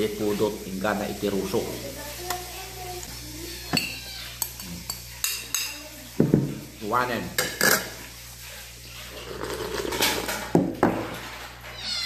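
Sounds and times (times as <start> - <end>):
kitten meowing: 11.7 - 12.0.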